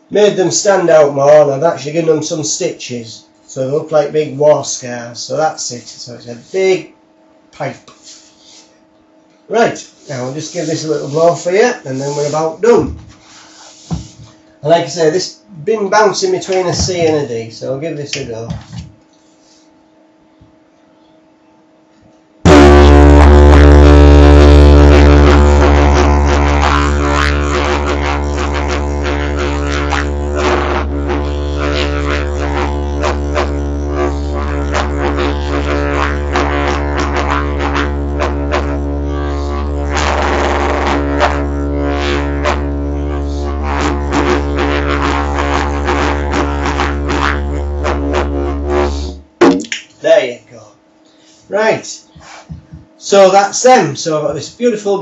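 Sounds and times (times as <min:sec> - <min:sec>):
didgeridoo drone: 0:22.5 - 0:49.4.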